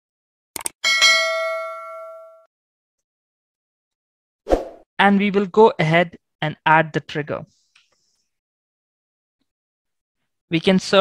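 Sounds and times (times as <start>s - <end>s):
notification bell ding: 0.9s - 2.5s.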